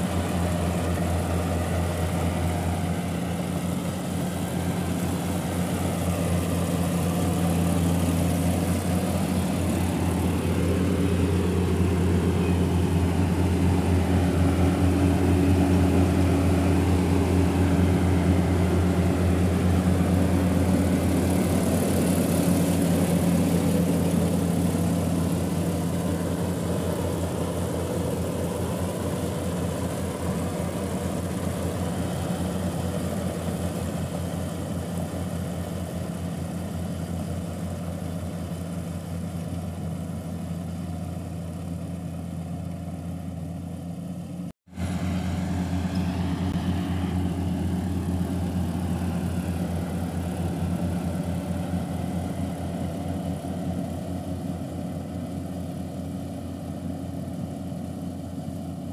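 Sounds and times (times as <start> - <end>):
combine harvester engine drone: 0.0 - 58.9.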